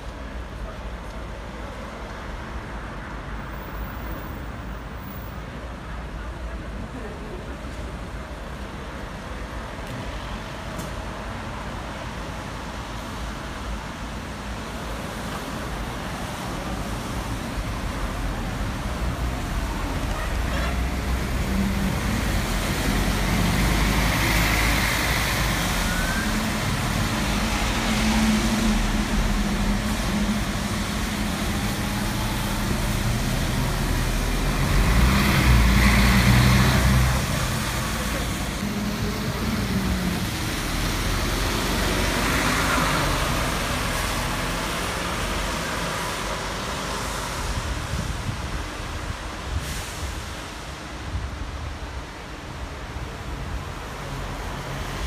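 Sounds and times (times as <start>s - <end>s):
tyre hiss on wet road: 10.0s - 55.0s.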